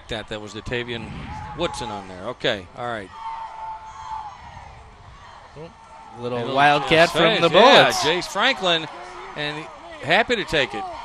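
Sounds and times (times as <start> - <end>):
crowd noise in stands: 0.0 - 11.0.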